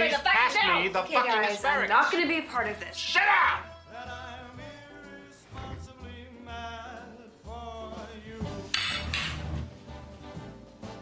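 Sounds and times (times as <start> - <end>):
soft music with singing: 0.0 - 11.0
dishes and cutlery clattering: 8.7 - 9.6
dishes crashing: 8.7 - 9.6.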